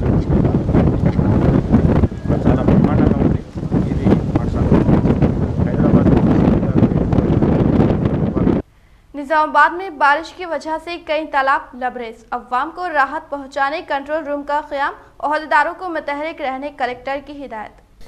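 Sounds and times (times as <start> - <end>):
wind buffeting microphone: 0.0 - 8.6
muffled man's voice: 2.2 - 7.5.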